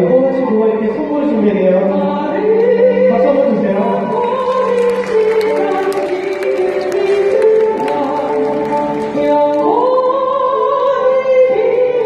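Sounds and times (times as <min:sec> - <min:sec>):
soprano singing through speakers: 0:00.0 - 0:12.0.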